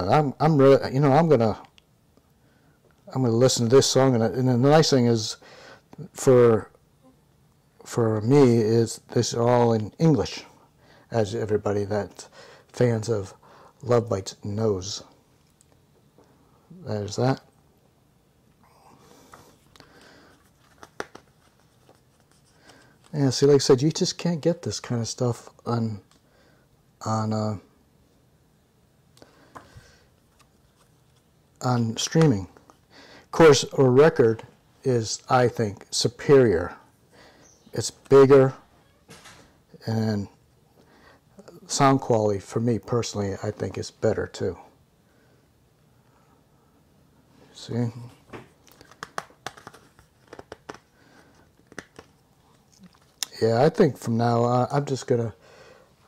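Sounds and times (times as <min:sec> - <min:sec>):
paper rustling: 0:19.5 - 0:23.2, 0:48.3 - 0:53.1
light clicks and taps of cd case: 0:20.6 - 0:22.0, 0:48.3 - 0:50.9, 0:51.6 - 0:52.2.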